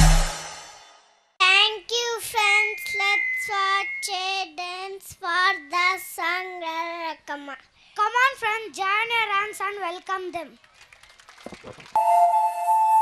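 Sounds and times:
girl speaking into a microphone: 0:01.4 - 0:10.6.

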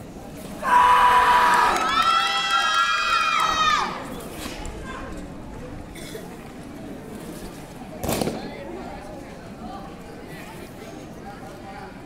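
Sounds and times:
crowd chatter: 0:00.0 - 0:12.0
loud shout: 0:00.6 - 0:04.0.

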